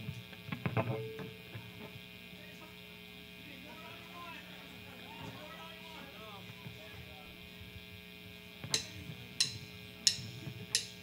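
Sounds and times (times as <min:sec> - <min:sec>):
amplifier electrical hum: 0:00.0 - 0:11.0
drumsticks clicking together: 0:08.6 - 0:11.0.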